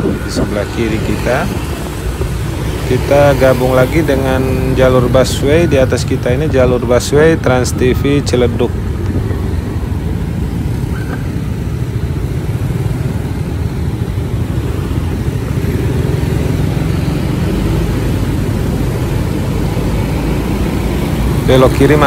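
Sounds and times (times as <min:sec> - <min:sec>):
road and wind noise: 0:00.0 - 0:22.0
traffic hum: 0:00.0 - 0:22.0
motorcycle engine running: 0:08.8 - 0:22.0.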